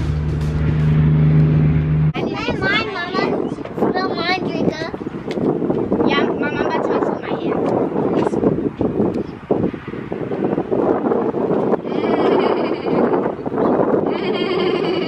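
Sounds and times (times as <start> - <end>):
children chattering: 2.2 - 5.1
children making bleat-like sounds: 11.8 - 13.3.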